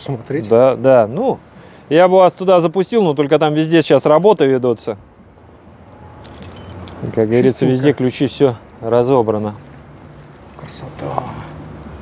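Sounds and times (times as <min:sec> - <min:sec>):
faint outdoor background noise: 0:00.0 - 0:12.0
light metallic jingle: 0:05.8 - 0:08.0, 0:09.7 - 0:11.6.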